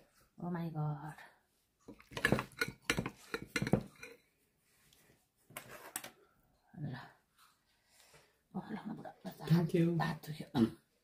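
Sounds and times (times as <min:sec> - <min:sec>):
metal spoon clinking on dishes: 0:01.9 - 0:04.3.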